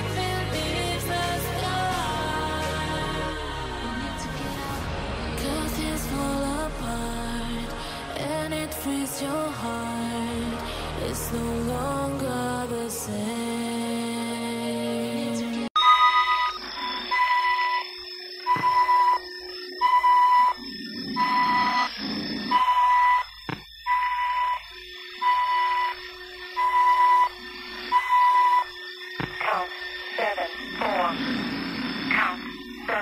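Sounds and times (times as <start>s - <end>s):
electronic alarm beeping: 15.8s - 33.0s.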